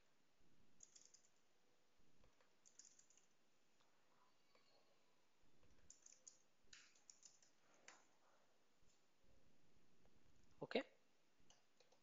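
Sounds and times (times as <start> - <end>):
keyboard keystrokes: 0.8 - 1.3, 2.6 - 3.3, 5.8 - 7.6.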